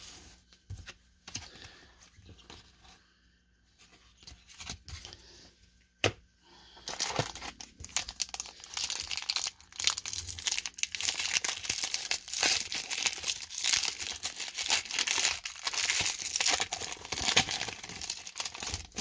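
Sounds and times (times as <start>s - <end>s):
foil wrapper tearing and crinkling: 6.9s - 19.0s.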